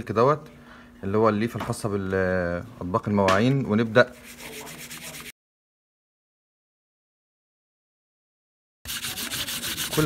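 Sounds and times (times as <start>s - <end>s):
steel wool scratching metal foil: 4.2s - 5.3s, 8.9s - 10.0s.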